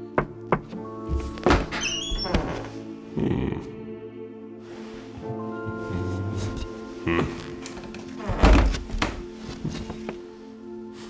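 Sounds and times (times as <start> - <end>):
background music: 0.0 - 11.0
door opening thump: 8.2 - 9.2.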